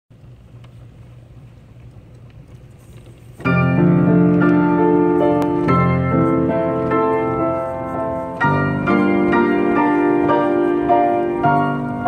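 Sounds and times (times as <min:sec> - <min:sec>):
player piano mechanism humming: 0:00.1 - 0:12.0
piano playing chords: 0:03.4 - 0:12.0.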